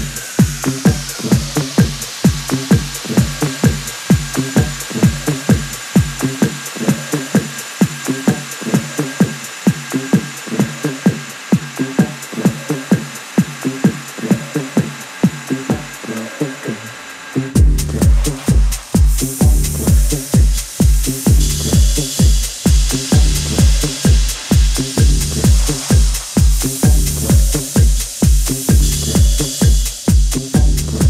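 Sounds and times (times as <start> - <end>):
bass: 0.0 - 7.1, 17.4 - 31.0
bright rising hiss: 0.0 - 31.0
house music kick drum: 0.0 - 31.0.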